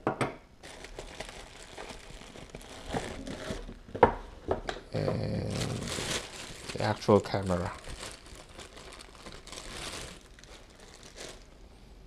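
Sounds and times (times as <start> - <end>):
plastic bag crinkling: 0.6 - 3.9, 5.0 - 11.8.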